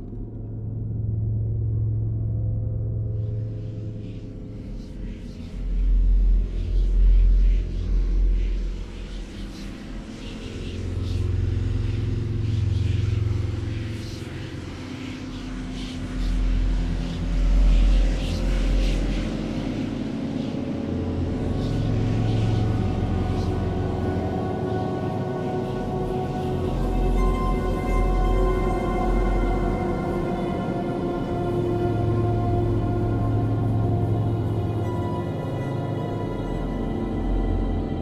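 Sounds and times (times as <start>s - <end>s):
deep rumbling drones: 19.7s - 38.0s.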